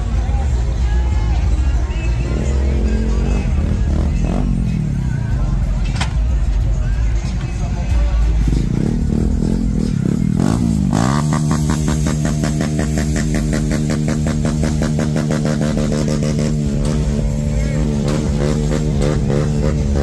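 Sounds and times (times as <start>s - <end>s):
vehicle engine running: 0.0s - 20.0s.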